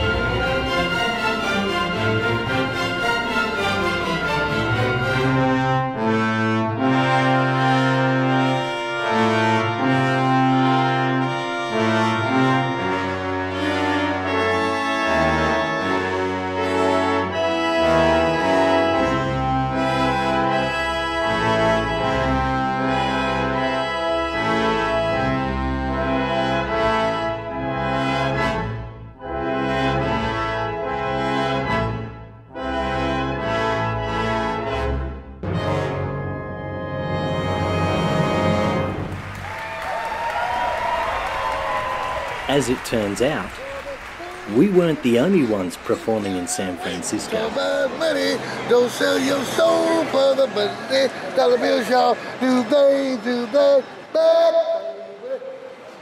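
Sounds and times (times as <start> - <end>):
brass chords: 0.0 - 39.7, 42.0 - 55.2.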